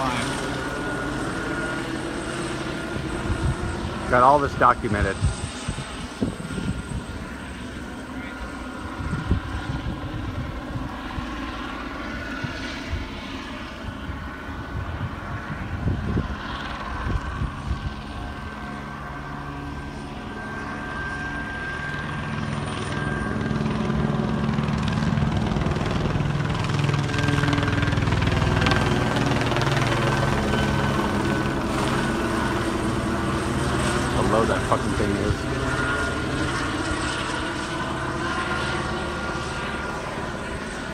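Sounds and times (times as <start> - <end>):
helicopter rotor and engine drone: 0.0 - 40.9.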